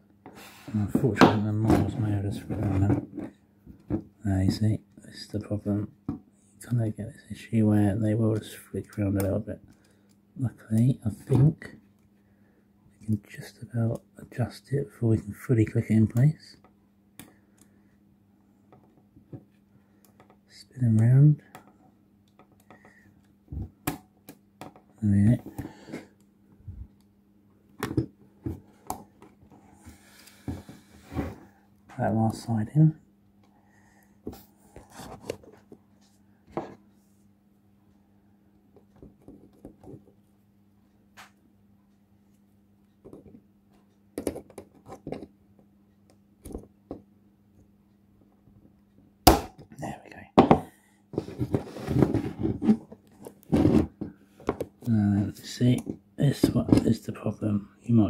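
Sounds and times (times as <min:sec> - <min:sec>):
plastic parts clicking and knocking: 0:43.0 - 0:43.4, 0:44.1 - 0:47.1, 0:50.4 - 0:54.9
handling noise: 0:51.2 - 0:54.8.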